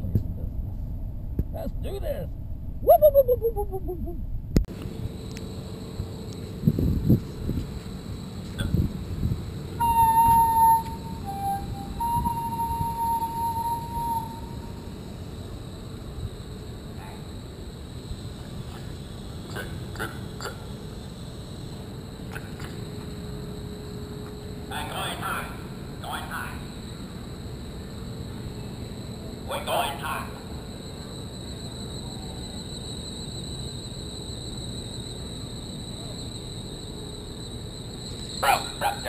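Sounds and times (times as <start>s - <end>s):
wind rumble on microphone: 0.0s - 5.3s, 6.0s - 14.8s
whistle-like tones: 2.8s - 4.0s, 9.8s - 14.9s.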